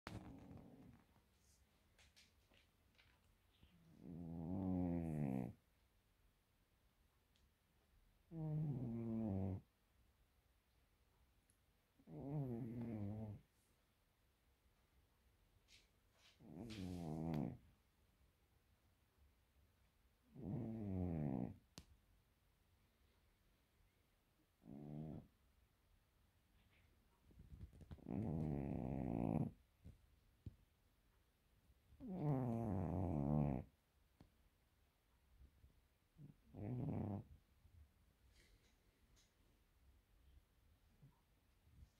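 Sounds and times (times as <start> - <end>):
cat snoring: 0.1 - 1.0, 3.9 - 5.6, 8.3 - 9.7, 12.0 - 13.4, 16.4 - 17.6, 20.3 - 21.6, 24.6 - 25.3, 27.7 - 29.6, 32.0 - 33.7, 36.2 - 37.4.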